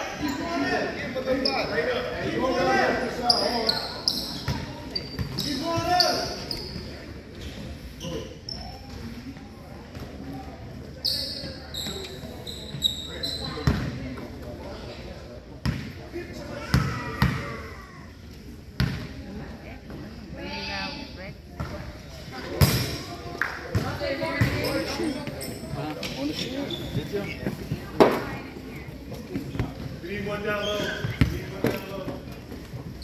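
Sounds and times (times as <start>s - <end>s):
short high squeaks: 11.0s - 13.6s
people talking: 18.9s - 32.4s.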